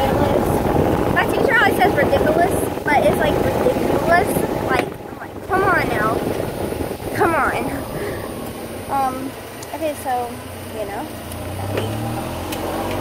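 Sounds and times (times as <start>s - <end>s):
golf cart rumbling: 0.0s - 13.0s
wind buffeting microphone: 0.0s - 13.0s
girl making wordless vocal sounds: 7.1s - 8.3s.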